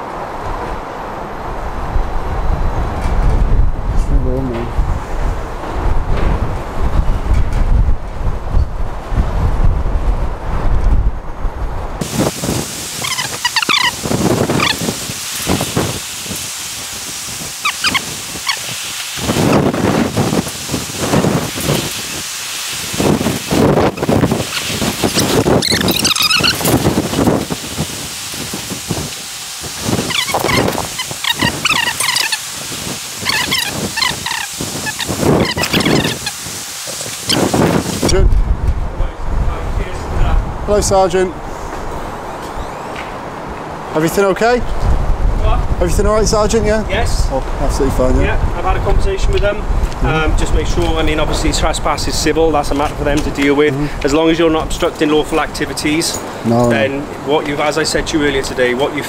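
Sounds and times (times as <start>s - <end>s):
wind buffeting microphone: 0.0s - 59.0s
even hiss: 12.0s - 38.3s
birds chirping: 12.1s - 16.0s, 17.5s - 20.0s, 23.7s - 27.5s, 29.8s - 32.6s, 33.2s - 38.1s.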